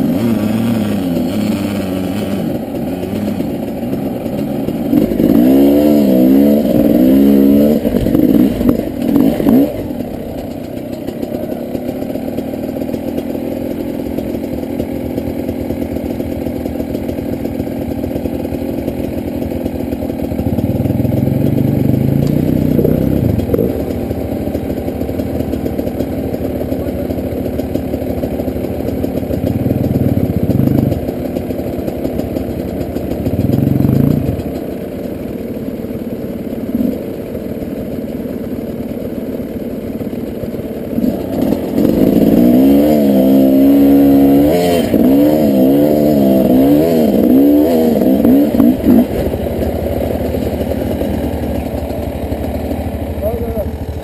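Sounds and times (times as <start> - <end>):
dirt bike engines revving: 0.0 - 35.3, 40.8 - 54.0.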